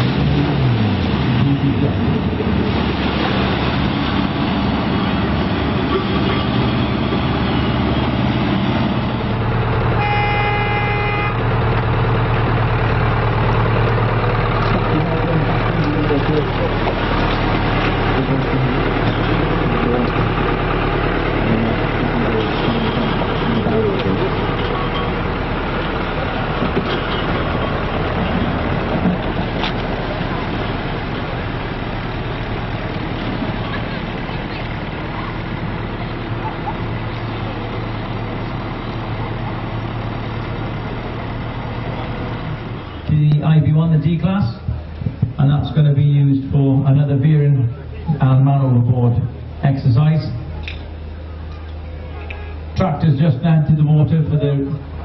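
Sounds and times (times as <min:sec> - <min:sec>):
diesel tractor engine running: 0:00.0 - 0:55.0
horn sounding: 0:10.0 - 0:11.6, 0:51.8 - 0:52.8.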